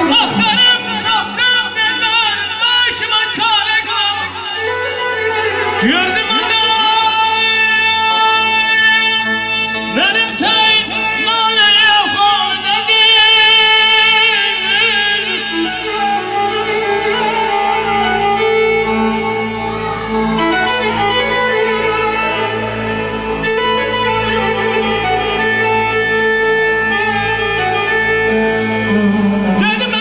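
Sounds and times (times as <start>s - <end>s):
instrumental melody: 0.0s - 30.0s.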